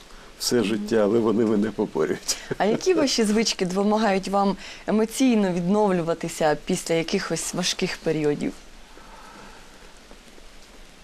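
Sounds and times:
outdoor ambience hiss: 0:00.0 - 0:11.0.

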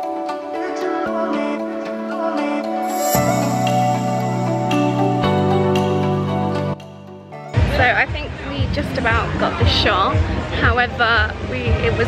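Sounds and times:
faint background music: 0:07.5 - 0:12.0
woman talking: 0:07.7 - 0:12.0.

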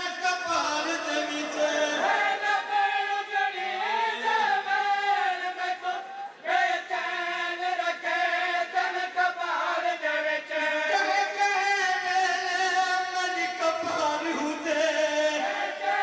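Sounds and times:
men chanting in chorus: 0:00.0 - 0:16.0.

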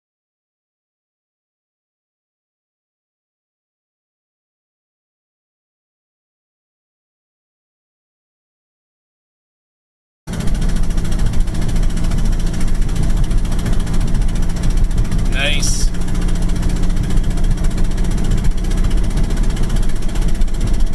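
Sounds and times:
diesel engine drone from cabin: 0:10.3 - 0:20.9
road noise: 0:10.3 - 0:20.9.

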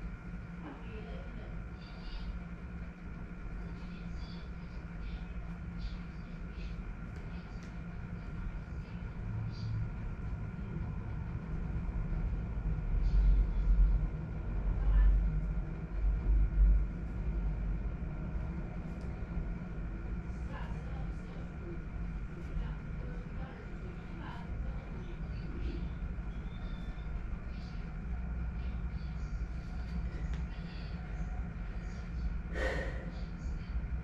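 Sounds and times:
faint high whines: 0:00.0 - 0:34.0
steady low hum: 0:00.0 - 0:34.0.

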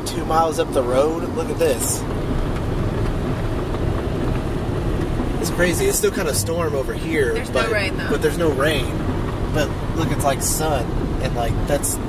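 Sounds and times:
car cabin road noise: 0:00.0 - 0:12.0.

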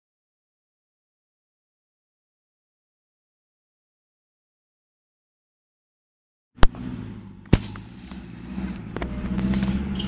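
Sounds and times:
vehicle engine at low revs: 0:06.6 - 0:10.0.

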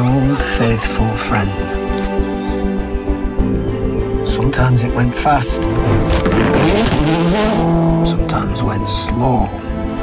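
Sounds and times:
car engine revving through gears: 0:05.6 - 0:08.6.

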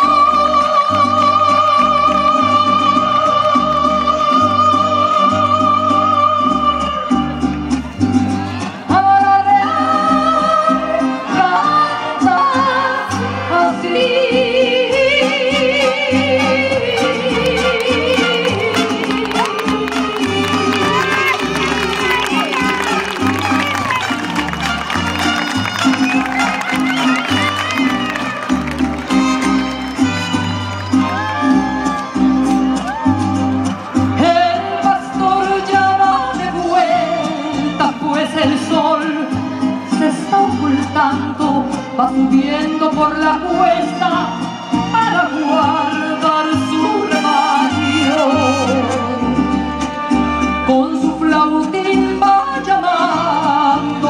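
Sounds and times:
crowd voices: 0:00.0 - 0:54.0
mariachi band playing: 0:00.0 - 0:54.0
violins: 0:00.0 - 0:54.0
trumpets: 0:15.6 - 0:33.0.

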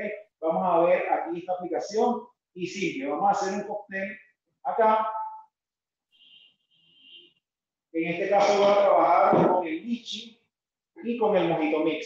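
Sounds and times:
man's voice: 0:00.0 - 0:05.4, 0:07.9 - 0:12.0.

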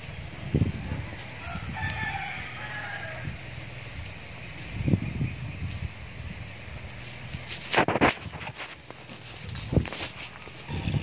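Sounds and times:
rooster crowing: 0:00.8 - 0:03.6.

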